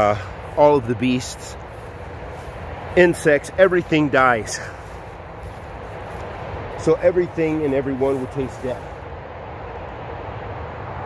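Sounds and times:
low rumbling outdoor noise: 0.0s - 11.0s.

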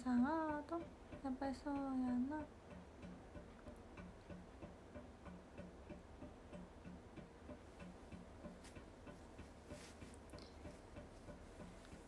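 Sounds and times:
faint regular ticking: 0.0s - 12.0s.

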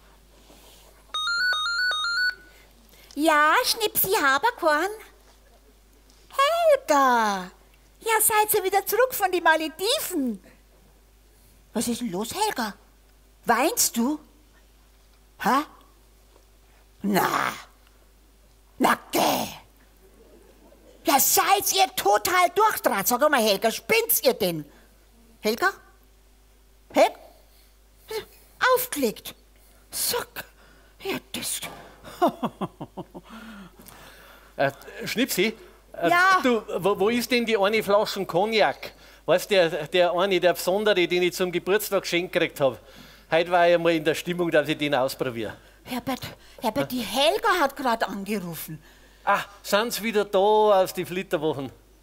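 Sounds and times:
mobile phone ringtone trill: 1.1s - 2.5s
woman's questioning exclamation: 17.0s - 17.8s.

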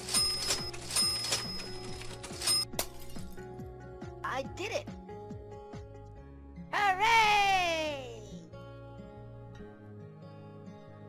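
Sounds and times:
cartoon coin clinks: 0.0s - 3.4s
background music: 0.0s - 11.0s.

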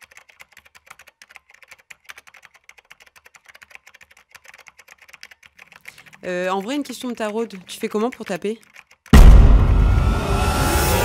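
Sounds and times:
fast typing on keyboard: 0.0s - 9.2s.

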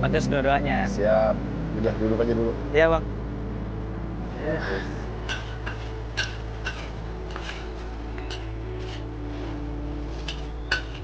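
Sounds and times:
low hum: 0.0s - 11.0s
metal spatula clinking on wok: 5.3s - 7.6s, 10.3s - 11.0s.

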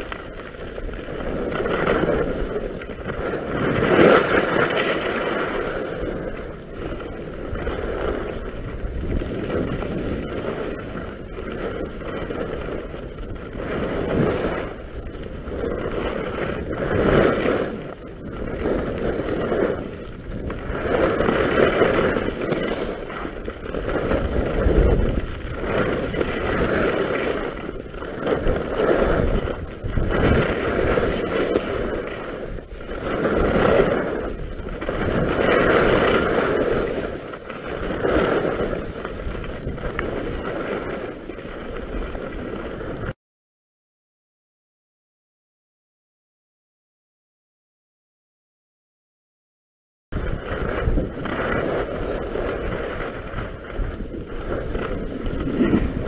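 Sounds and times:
skis carving on snow: 0.0s - 43.2s, 50.2s - 56.0s.

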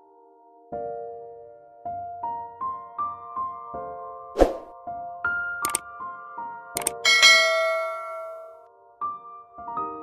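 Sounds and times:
soft piano music: 0.0s - 10.0s
sharp clicks: 5.6s - 5.8s, 6.8s - 7.0s
bright bell-like ding: 7.0s - 8.6s.

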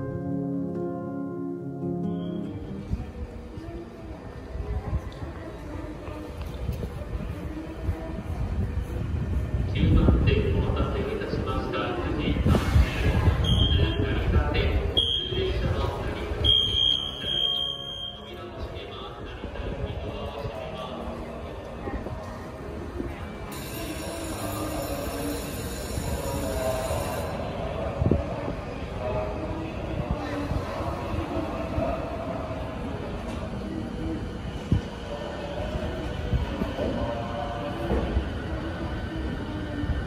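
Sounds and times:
electric train rumble: 0.0s - 40.0s
high warning tone: 16.4s - 18.4s.

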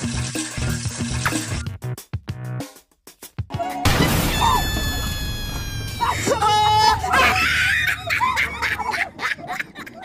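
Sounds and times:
person screaming: 3.6s - 7.8s.

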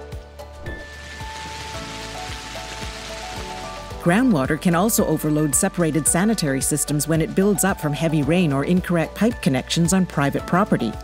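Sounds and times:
background music with held notes: 0.0s - 11.0s
heavy rain hiss: 0.7s - 4.1s.

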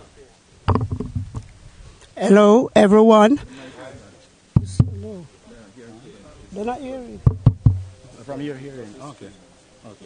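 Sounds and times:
small knocks near microphone: 0.7s - 1.6s, 4.6s - 5.1s, 7.2s - 8.0s.

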